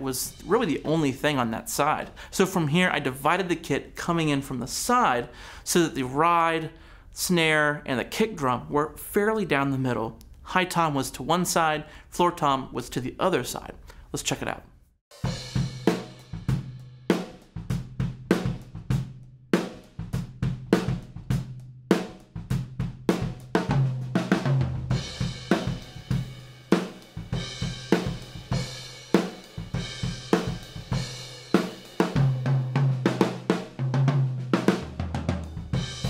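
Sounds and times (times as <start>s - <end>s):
drum kit groove: 0.0s - 5.1s, 15.1s - 36.0s.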